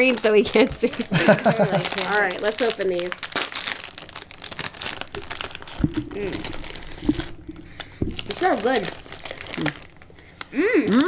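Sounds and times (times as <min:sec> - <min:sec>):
plastic snack bag crinkling: 0:00.0 - 0:11.0.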